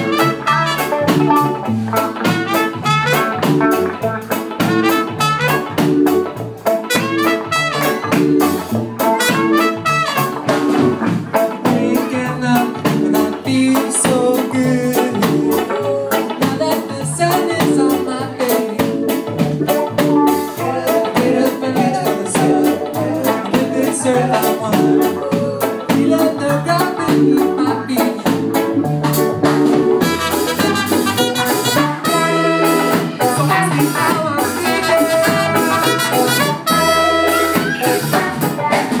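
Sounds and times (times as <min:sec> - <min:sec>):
trumpet: 0:00.0 - 0:06.1, 0:06.7 - 0:11.0, 0:30.0 - 0:38.3
live ska band playing: 0:00.0 - 0:39.0.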